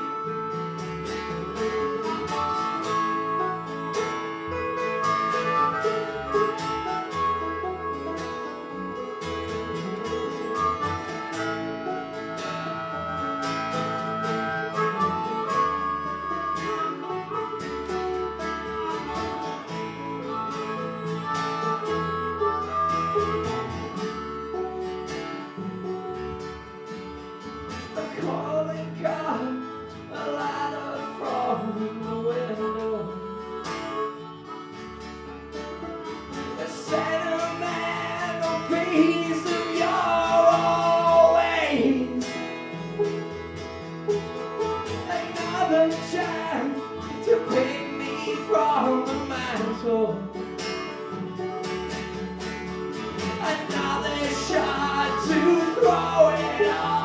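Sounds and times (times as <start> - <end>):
acoustic guitar strumming: 0.0 - 57.0
banjo picking: 0.0 - 57.0
harmonica: 0.0 - 57.0
upright bass line: 49.1 - 57.0.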